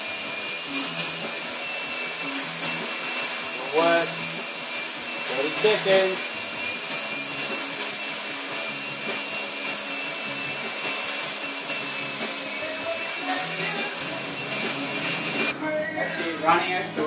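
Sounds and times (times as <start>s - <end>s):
bike trainer roller whine: 0.0s - 15.6s.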